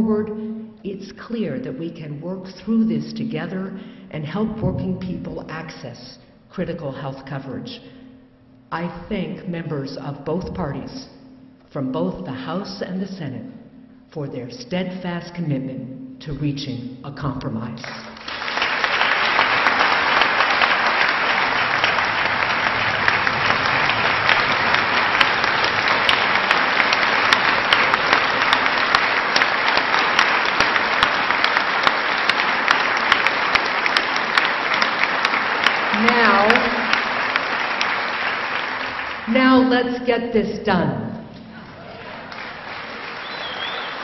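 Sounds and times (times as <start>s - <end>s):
audience applause in a hall: 17.8s - 39.7s, 41.3s - 44.0s
person speaking: 35.9s - 36.9s, 39.3s - 41.2s.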